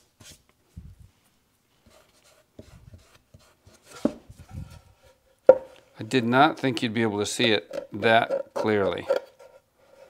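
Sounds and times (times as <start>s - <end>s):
wooden panel scuffing: 2.6s - 5.7s
wooden knocks: 5.5s - 5.7s.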